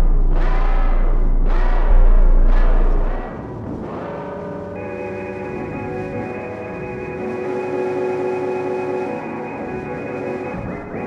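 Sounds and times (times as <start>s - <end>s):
low rumble: 0.0s - 3.6s
ambient synthesizer drone: 0.0s - 11.0s.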